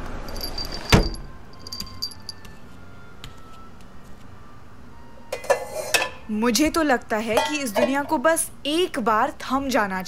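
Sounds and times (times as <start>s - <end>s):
dishes and cutlery clinking: 5.3s - 6.3s, 7.3s - 8.2s.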